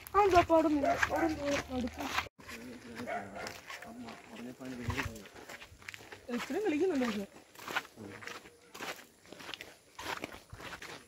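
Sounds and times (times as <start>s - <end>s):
footsteps on grass: 0.0s - 11.0s.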